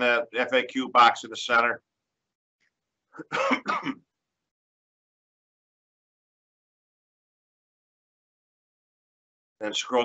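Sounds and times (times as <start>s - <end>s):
person coughing: 3.2s - 4.0s.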